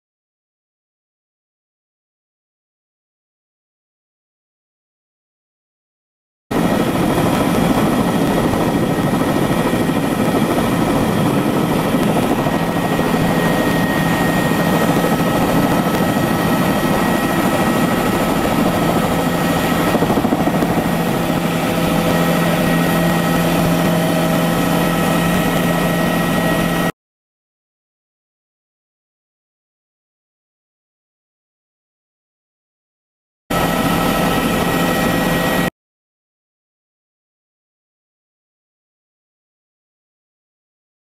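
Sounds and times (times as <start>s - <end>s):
helicopter engine and rotor: 6.5s - 27.0s, 33.5s - 35.7s.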